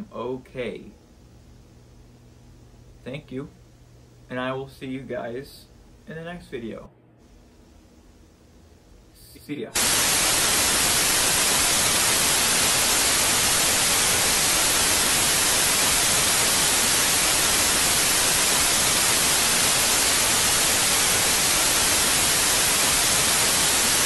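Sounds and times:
television static hiss: 0:00.0 - 0:24.0.

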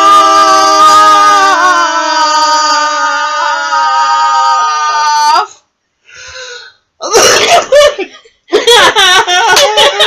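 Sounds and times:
women laughing: 0:07.6 - 0:10.0.

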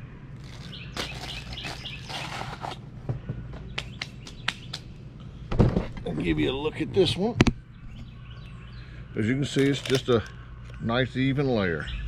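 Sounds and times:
birds chirping: 0:00.0 - 0:12.0
steady low hum: 0:00.0 - 0:12.0.

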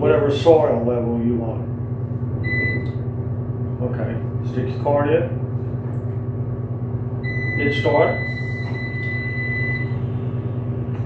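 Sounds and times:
steady low hum: 0:00.0 - 0:11.0
long electronic beep: 0:02.4 - 0:02.9, 0:07.2 - 0:10.0.

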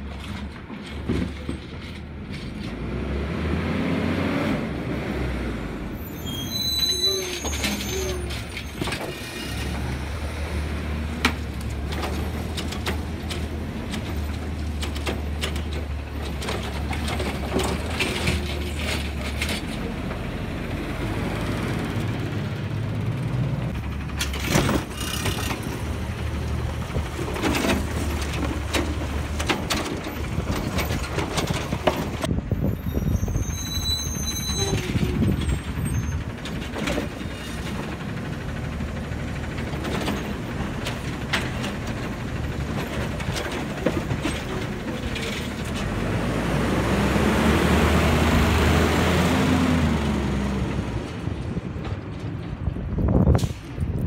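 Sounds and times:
garbage truck engine running: 0:04.7 - 0:54.0
high-pitched squeal: 0:06.0 - 0:09.7, 0:32.6 - 0:36.2
carts and arm clanking: 0:06.4 - 0:32.3, 0:33.1 - 0:54.0.

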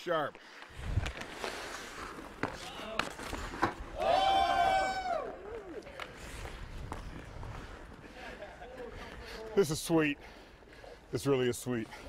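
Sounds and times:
hockey sticks and puck clacking: 0:01.1 - 0:04.0.

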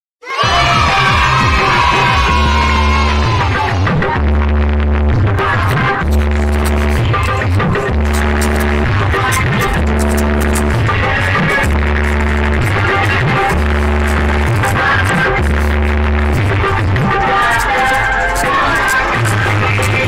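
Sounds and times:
loud electronic dance music: 0:00.2 - 0:20.0
heavy bass note: 0:00.5 - 0:17.4.

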